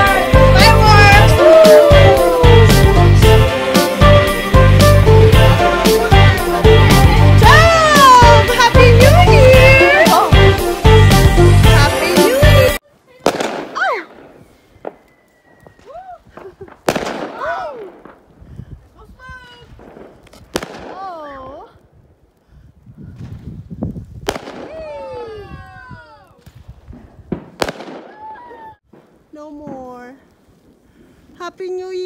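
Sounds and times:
music with heavy beat: 0:00.0 - 0:12.8
firework bang with crackling: 0:13.2 - 0:18.3, 0:19.6 - 0:21.3, 0:24.2 - 0:25.0, 0:26.4 - 0:30.2.

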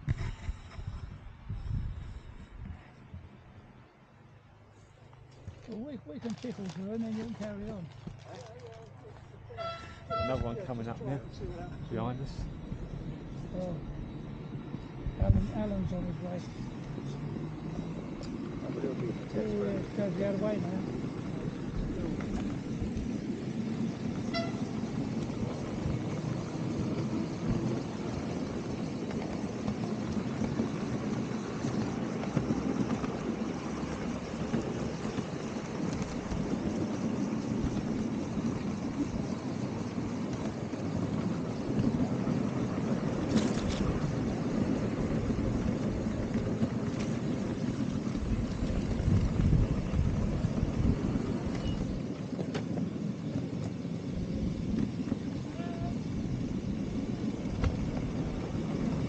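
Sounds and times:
train wheels rumbling on track: 0:05.1 - 0:59.0
sharp clicks of wheels: 0:16.8 - 0:59.0.

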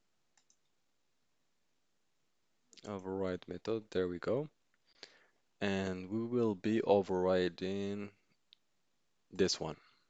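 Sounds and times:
computer mouse clicks: 0:00.3 - 0:00.8.

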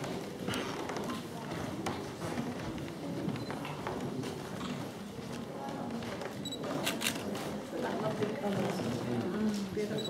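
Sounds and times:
background murmur: 0:00.0 - 0:10.0.

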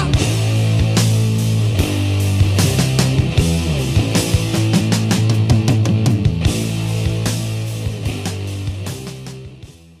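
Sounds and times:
hard rock music: 0:00.0 - 0:10.0.

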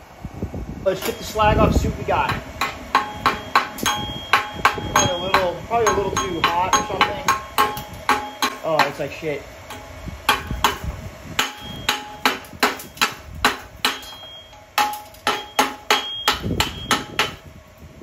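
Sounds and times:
hammer chipping metal: 0:01.0 - 0:01.4, 0:02.2 - 0:09.1, 0:09.7 - 0:17.4
steel plate ringing: 0:02.2 - 0:09.1, 0:09.7 - 0:17.4.

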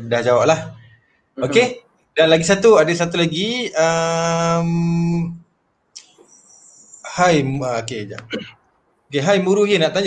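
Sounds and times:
man saying um: 0:01.4 - 0:01.8.

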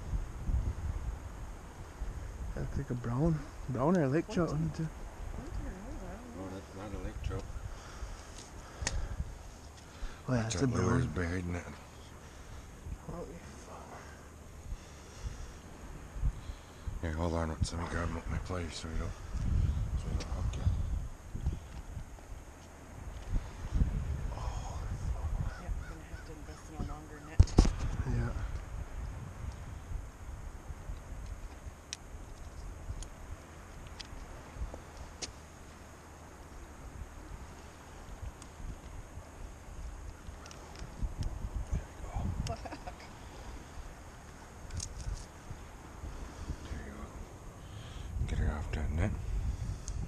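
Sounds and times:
low wind rumble: 0:00.0 - 0:50.0
person murmuring: 0:04.2 - 0:04.8
bird calling: 0:24.7 - 0:27.4.

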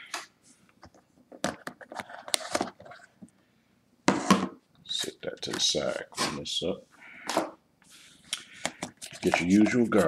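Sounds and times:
paper rustling: 0:08.0 - 0:10.0.

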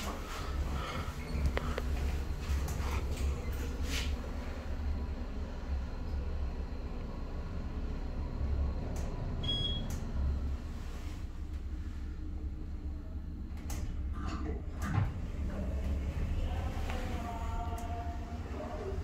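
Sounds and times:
elevator cab hum: 0:00.0 - 0:19.0.

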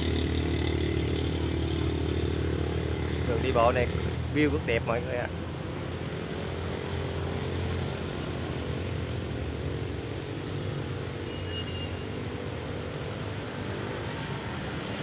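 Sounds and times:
passing motorbikes and cars: 0:00.0 - 0:15.0
road traffic drone: 0:00.0 - 0:15.0.

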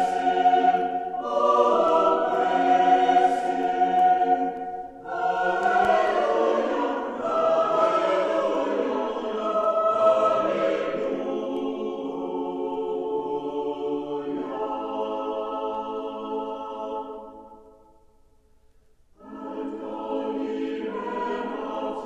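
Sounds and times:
choir singing held notes: 0:00.0 - 0:17.7, 0:19.2 - 0:22.0.

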